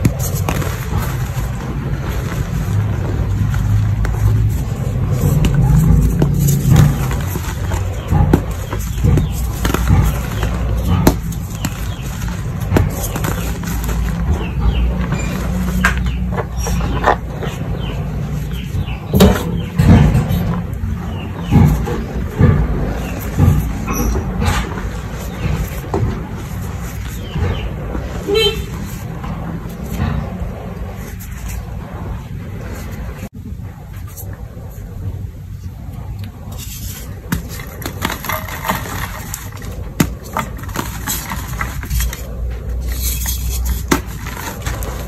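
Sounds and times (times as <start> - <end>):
low background rumble: 0.0 - 45.0
vehicle horn toot: 28.2 - 28.8.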